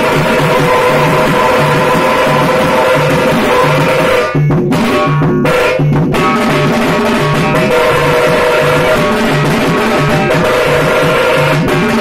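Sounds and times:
frame drums and bass drums beating: 0.0s - 12.0s.

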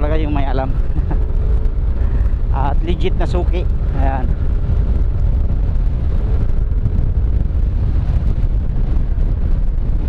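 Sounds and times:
motorcycle engine hum: 0.0s - 10.0s
wind buffeting microphone: 0.0s - 10.0s.

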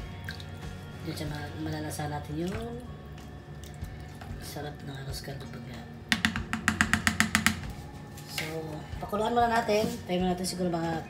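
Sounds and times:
spoon tapping metal pot: 6.2s - 7.8s.

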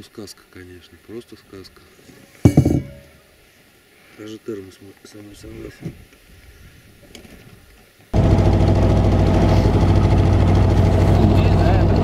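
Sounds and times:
outboard motor running: 8.2s - 12.0s.

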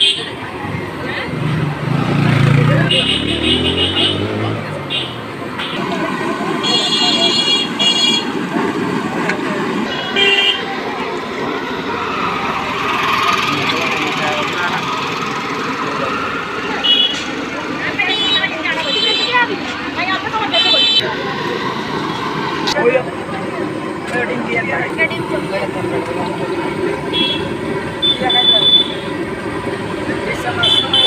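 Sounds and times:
traffic din: 0.0s - 31.0s
voices: 0.0s - 31.0s
vehicle horns honking: 2.7s - 5.9s, 6.6s - 8.4s, 9.9s - 10.7s, 16.8s - 17.3s, 27.1s - 29.1s, 30.5s - 31.0s.

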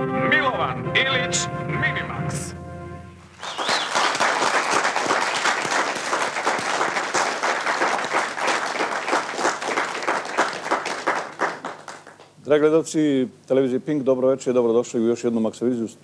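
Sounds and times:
audience applauding: 3.3s - 12.4s.

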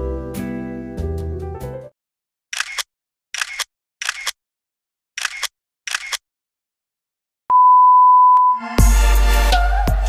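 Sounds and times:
camera shutter clicks: 2.6s - 4.4s, 5.2s - 6.2s.

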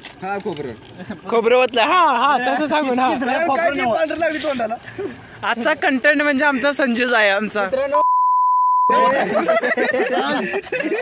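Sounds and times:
censor bleep: 8.0s - 9.0s.

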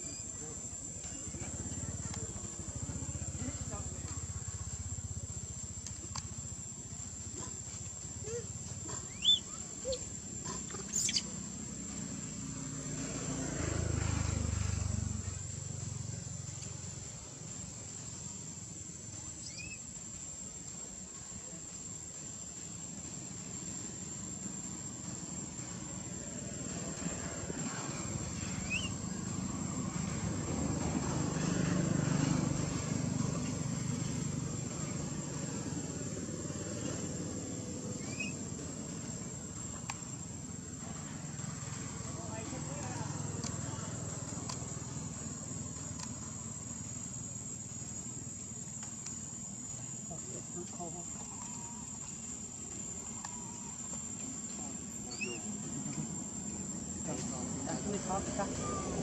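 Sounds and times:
high-pitched insect drone: 0.0s - 59.0s
faint voices: 50.0s - 59.0s.

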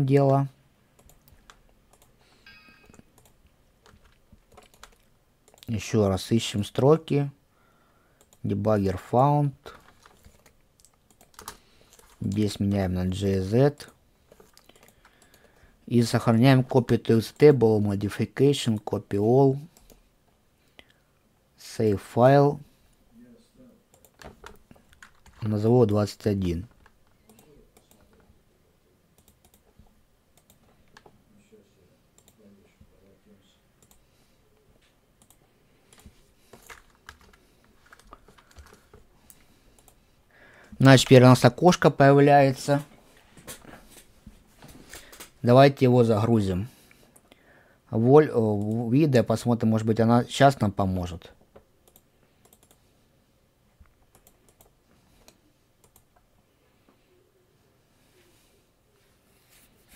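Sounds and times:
faint computer clicks: 1.0s - 5.7s, 13.7s - 15.6s, 23.9s - 25.4s, 34.8s - 40.0s, 51.8s - 52.9s
mouse and keyboard clicks: 2.8s - 5.7s, 9.8s - 12.6s, 29.2s - 31.1s, 51.8s - 52.8s.

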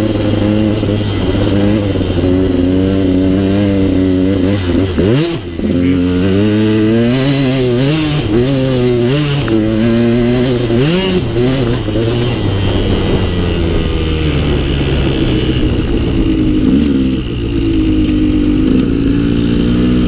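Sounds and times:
dirt bike engine revving: 0.0s - 20.0s.

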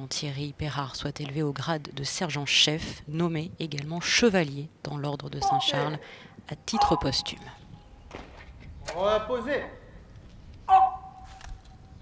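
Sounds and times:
man shouting: 5.4s - 6.0s.

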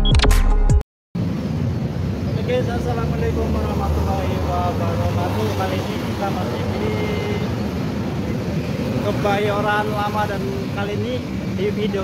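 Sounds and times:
motorcycles passing: 1.2s - 12.0s
road traffic rumble: 1.2s - 12.0s.

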